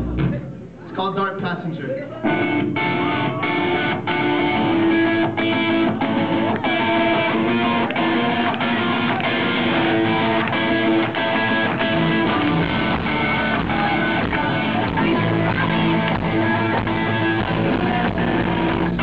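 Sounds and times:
electric guitars strumming: 0:02.2 - 0:19.0
live rock band playing: 0:02.2 - 0:19.0.

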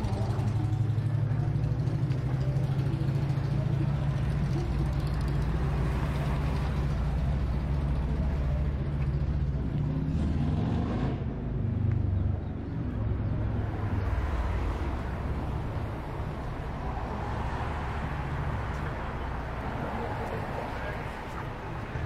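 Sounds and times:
street traffic: 0:00.0 - 0:22.0
vehicle engine humming: 0:00.0 - 0:22.0.

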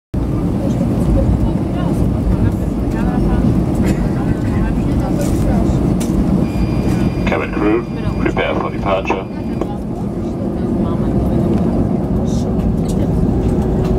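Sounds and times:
aircraft cabin engine rumble: 0:00.2 - 0:13.9
faint voices: 0:00.2 - 0:13.9.

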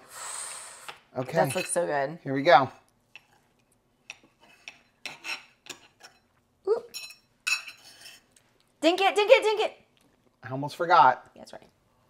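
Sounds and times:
metal forks clinking on a bowl: 0:01.3 - 0:01.8.

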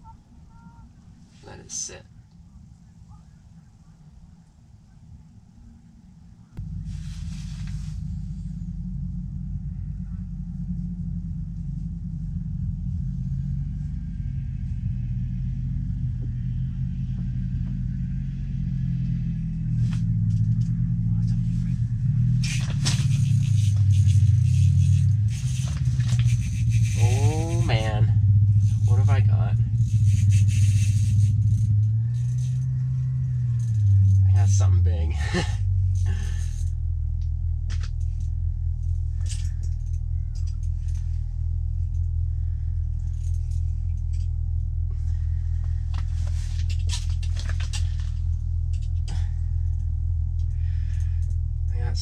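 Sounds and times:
motor droning: 0:02.1 - 0:52.0
clatter and rattling: 0:06.6 - 0:52.0.

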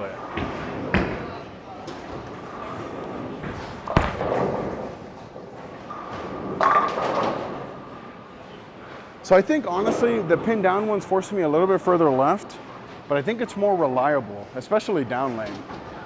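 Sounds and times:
bowling ball rolling: 0:01.9 - 0:08.0.

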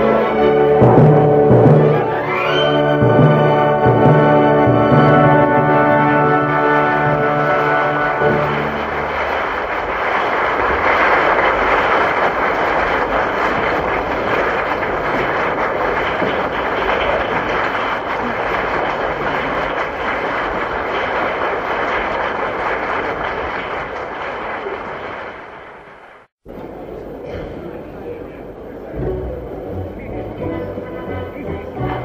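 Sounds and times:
audience applauding: 0:00.0 - 0:26.3.

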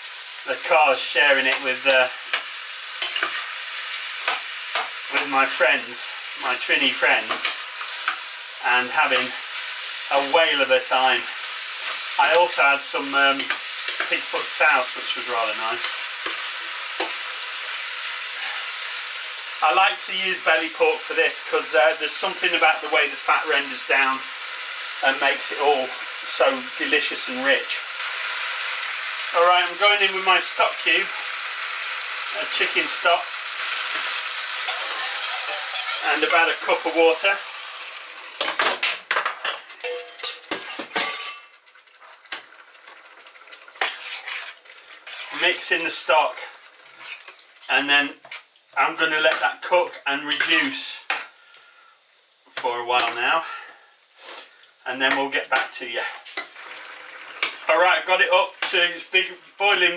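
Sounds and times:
pork sizzling in a pan: 0:00.0 - 0:59.9
metal bowl and spoon clinking: 0:34.6 - 0:36.4, 0:39.4 - 0:41.6.

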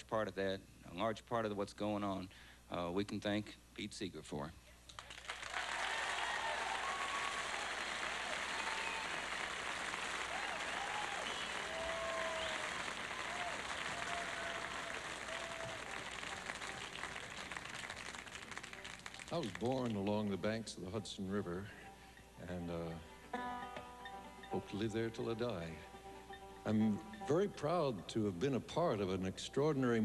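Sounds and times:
audience applauding: 0:05.0 - 0:20.1
audience cheers: 0:05.4 - 0:17.9.

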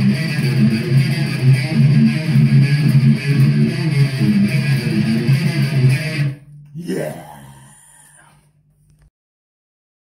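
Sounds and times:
distorted electric guitar note: 0:00.0 - 0:08.3.

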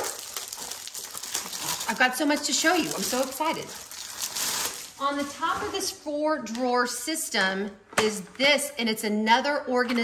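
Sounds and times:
plastic wrapping crinkling: 0:00.0 - 0:05.9.

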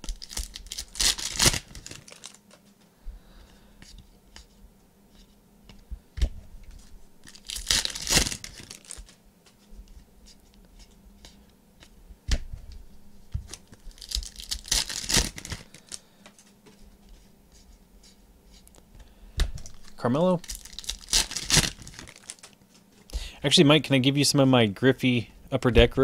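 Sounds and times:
foil wrappers crinkling and tearing: 0:00.0 - 0:02.6, 0:07.2 - 0:09.2, 0:13.5 - 0:16.0, 0:19.6 - 0:22.6.

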